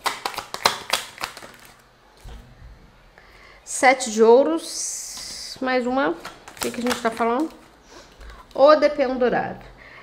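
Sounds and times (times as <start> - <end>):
cards clicking: 0.0 - 1.7, 6.2 - 7.7.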